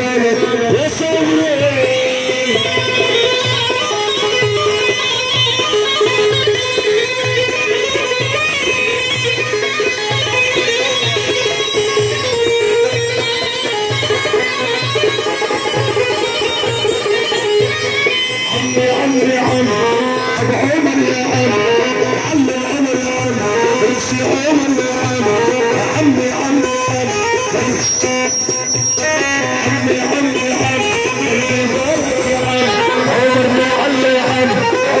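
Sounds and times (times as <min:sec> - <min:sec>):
plucked string melody: 0:29.0 - 0:35.0.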